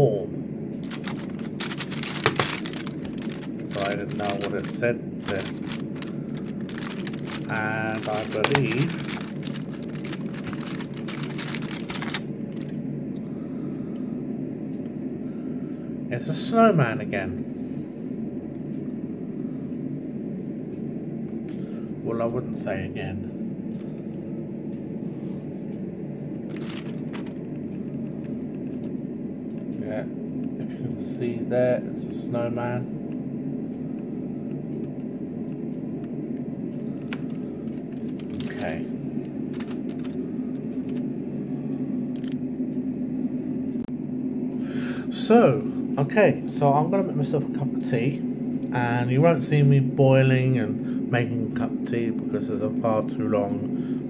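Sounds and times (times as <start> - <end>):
low hum: 0.0 - 54.0
cardboard crackling and rustling: 0.8 - 12.7, 26.5 - 27.4, 38.0 - 38.8, 39.5 - 40.2.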